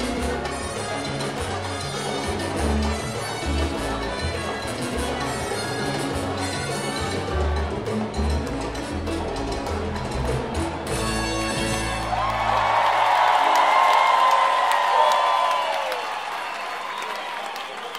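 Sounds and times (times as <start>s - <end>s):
live salsa band playing: 0.0s - 13.0s
crowd cheering and applauding: 0.0s - 17.9s.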